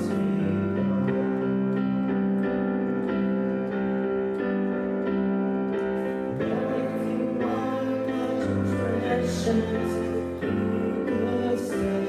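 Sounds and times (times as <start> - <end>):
digital piano chords: 0.0 - 12.0.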